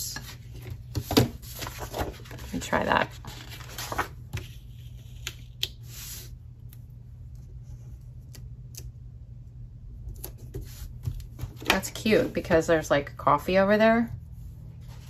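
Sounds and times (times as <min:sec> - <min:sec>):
paper pages rustling: 0:00.2 - 0:06.4.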